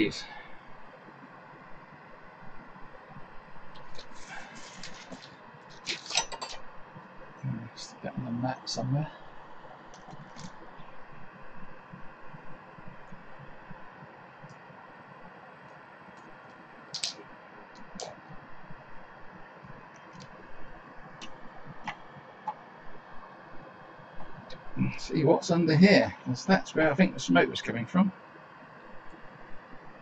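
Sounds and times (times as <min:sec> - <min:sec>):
faint room hum: 0:00.0 - 0:30.0.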